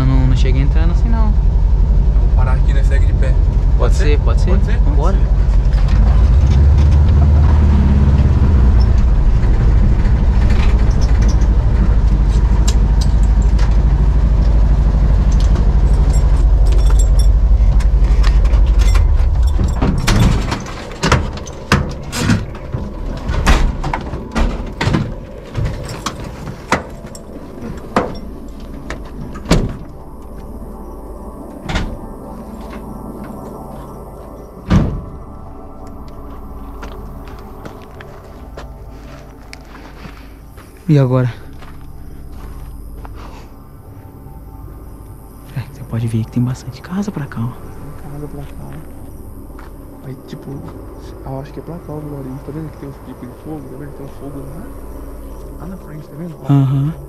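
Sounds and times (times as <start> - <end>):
van engine rumbling: 0.0 - 57.0
door slam: 18.5 - 27.0, 29.3 - 29.9, 34.7 - 35.1
van doors knocking and clunking: 18.5 - 29.9.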